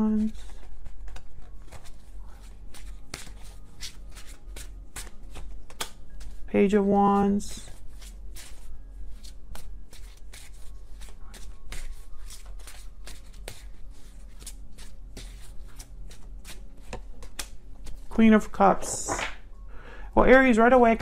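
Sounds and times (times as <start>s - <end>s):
cards being shuffled: 0.0s - 6.5s, 7.5s - 19.4s
card snaps: 5.7s - 6.0s, 19.1s - 19.4s.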